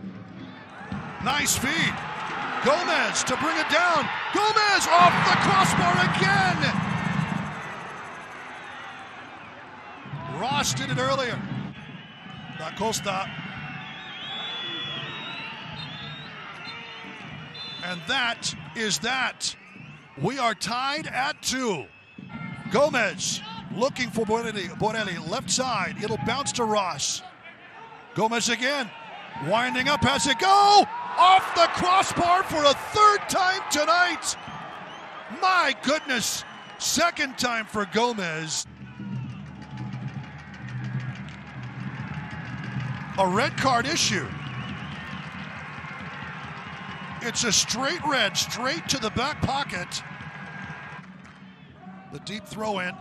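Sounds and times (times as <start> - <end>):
crowd calling and shouting: 0.0 - 53.0
high whistle-like tones: 13.2 - 18.8, 21.7 - 22.6.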